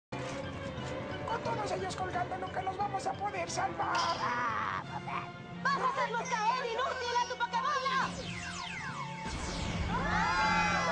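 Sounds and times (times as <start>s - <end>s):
background music: 0.1s - 10.9s.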